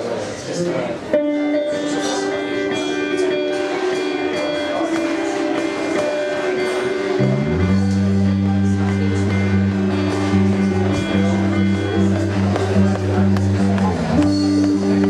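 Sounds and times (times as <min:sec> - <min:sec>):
drums: 0:00.0 - 0:15.0
electric guitar notes: 0:01.0 - 0:15.0
bass guitar low notes: 0:01.3 - 0:15.0.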